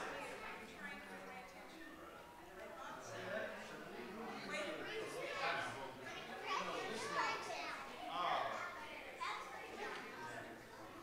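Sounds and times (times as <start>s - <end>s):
crowd chatter: 0.0s - 11.0s
children's voices: 4.6s - 11.0s.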